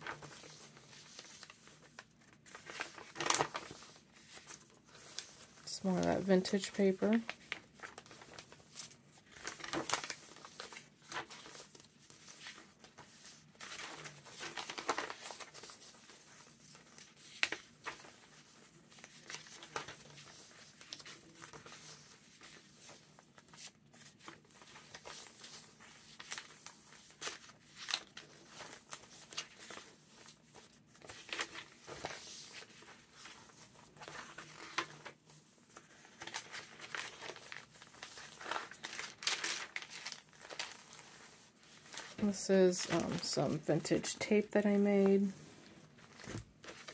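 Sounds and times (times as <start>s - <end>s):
paper pages rustling and crinkling: 0.0s - 46.9s.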